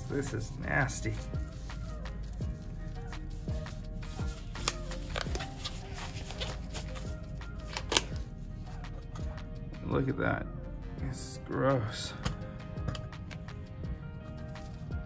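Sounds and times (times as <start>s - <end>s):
background music: 0.0s - 15.0s
gloves rustling and crinkling: 0.1s - 8.8s.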